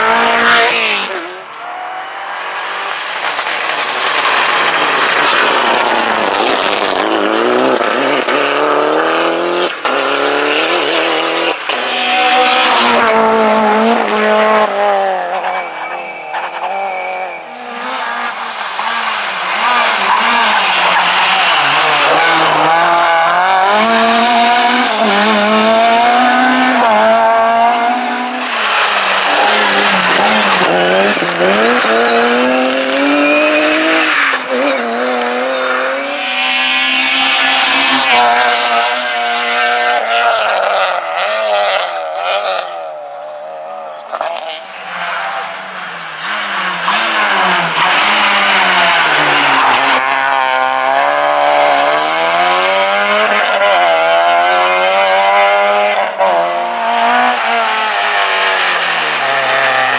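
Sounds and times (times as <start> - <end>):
rally car engines revving: 0.0 - 59.9.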